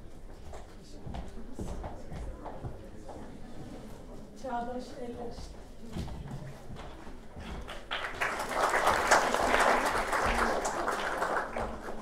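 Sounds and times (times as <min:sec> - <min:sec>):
audience applauding: 0:07.7 - 0:12.0.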